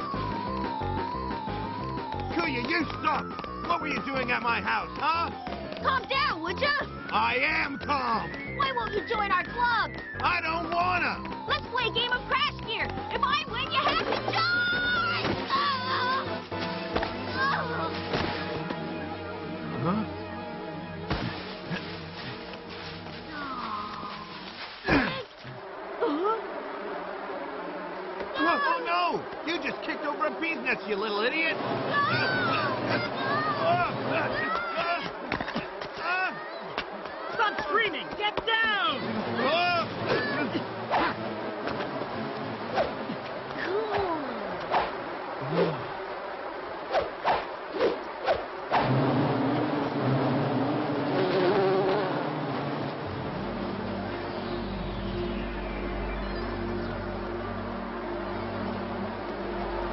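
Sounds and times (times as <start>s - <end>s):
bees buzzing: 0.0s - 59.9s
dense buzzing of bees: 25.6s - 35.8s, 47.6s - 59.9s
cartoon bee whizzing passes: 51.1s - 52.2s.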